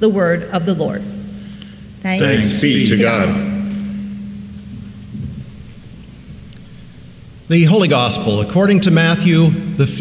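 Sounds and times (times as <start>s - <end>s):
low room rumble: 0.0s - 10.0s
steady low hum: 0.0s - 10.0s.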